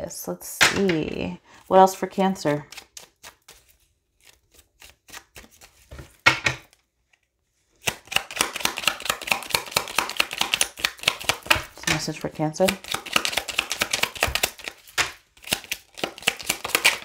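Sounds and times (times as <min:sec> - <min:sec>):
deck of cards being shuffled: 0:02.5 - 0:17.0
cards clicking: 0:07.8 - 0:17.0.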